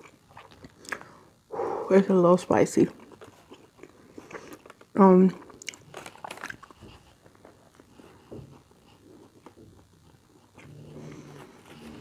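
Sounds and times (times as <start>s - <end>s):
chewing food: 0.0s - 1.2s, 2.9s - 12.0s.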